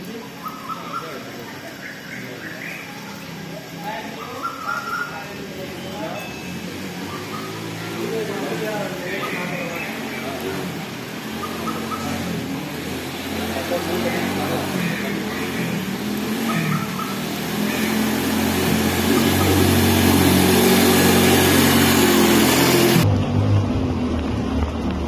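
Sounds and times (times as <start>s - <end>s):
people talking: 0.0s - 23.0s
outdoor background noise: 0.0s - 25.0s
vehicle engine humming: 0.0s - 25.0s
birds calling: 0.1s - 23.0s.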